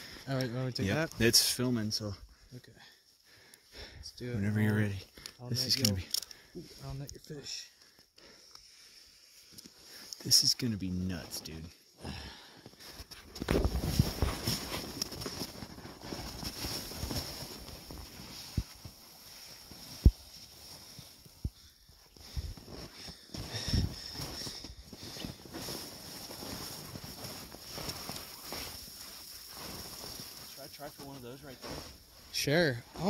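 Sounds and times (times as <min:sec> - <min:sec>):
irregular crackles: 0:12.7 - 0:31.9
crunching in snow: 0:12.8 - 0:21.4, 0:22.1 - 0:33.0
faint steady hiss: 0:25.8 - 0:33.0.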